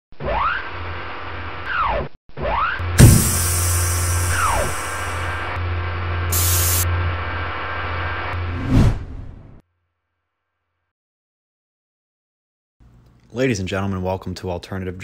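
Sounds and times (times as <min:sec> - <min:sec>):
hard impact: 0:03.0 - 0:03.8
hiss: 0:03.0 - 0:05.3, 0:06.3 - 0:06.9.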